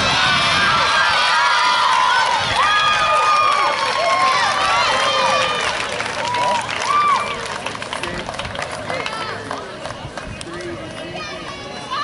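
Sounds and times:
spectators shouting and cheering: 0.0s - 12.0s.

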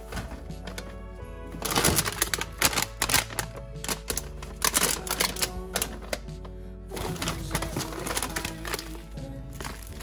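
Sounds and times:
background music: 0.0s - 10.0s
plastic packets crinkling: 0.0s - 10.0s.

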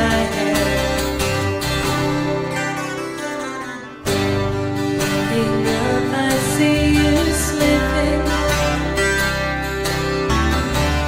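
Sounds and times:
bass: 0.0s - 11.0s
electric guitar: 0.0s - 11.0s
strummed acoustic guitars: 0.0s - 11.0s.

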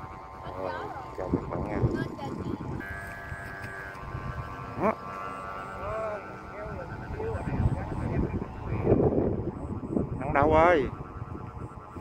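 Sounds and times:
kite flutes whistling: 2.7s - 12.0s.

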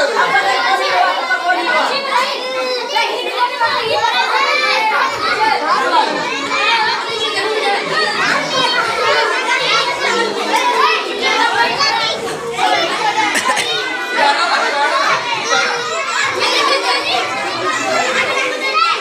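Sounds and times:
crowd of children chattering: 0.0s - 19.0s.

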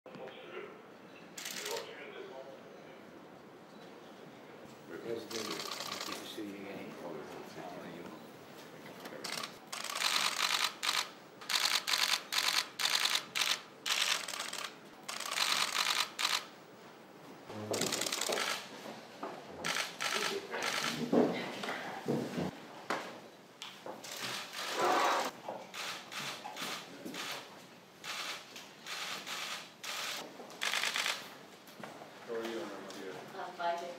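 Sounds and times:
camera shutters clicking: 1.4s - 1.9s, 5.3s - 6.2s, 9.2s - 16.5s, 17.8s - 18.7s, 19.7s - 21.0s, 24.0s - 27.4s, 28.0s - 31.2s
people moving about: 2.9s - 33.9s
low voices: 17.5s - 18.3s.

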